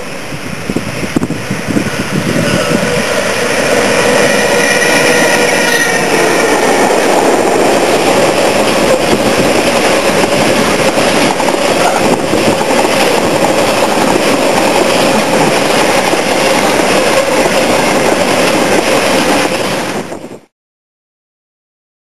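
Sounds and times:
freight train wheels on rails: 0:00.0 - 0:20.5.

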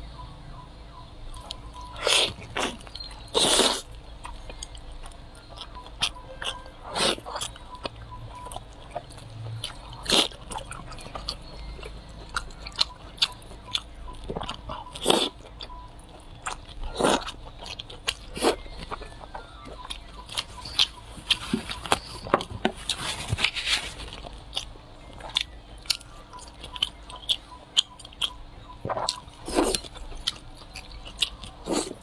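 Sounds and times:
low steady hum: 0:00.0 - 0:32.0
person biting and chewing: 0:01.4 - 0:07.6, 0:08.9 - 0:15.7, 0:16.4 - 0:32.0.

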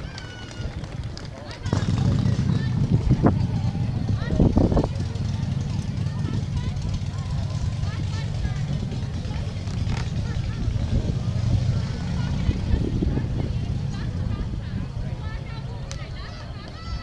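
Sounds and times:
distant crowd babble: 0:00.0 - 0:17.0
steady low rumble: 0:01.6 - 0:16.5.

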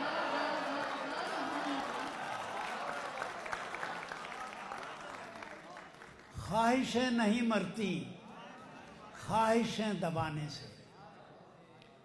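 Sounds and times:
audience applauding: 0:00.0 - 0:06.4.

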